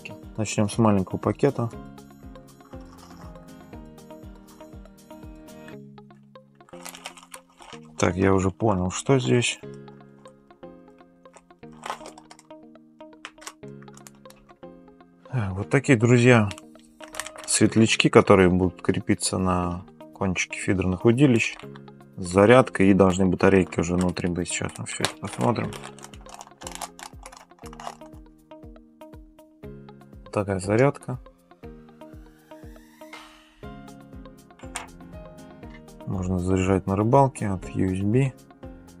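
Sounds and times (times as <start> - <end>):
soft background music: 0.0 - 39.0
packet crinkling: 6.7 - 8.0, 11.3 - 12.6, 13.2 - 14.5, 16.5 - 17.7, 25.0 - 28.2.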